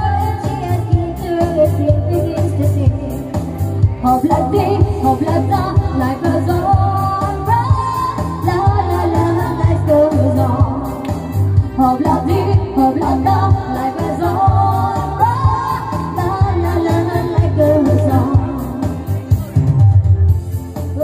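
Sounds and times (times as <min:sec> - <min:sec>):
woman singing into a microphone: 0:00.0 - 0:19.1
steady bass beat: 0:00.0 - 0:21.0.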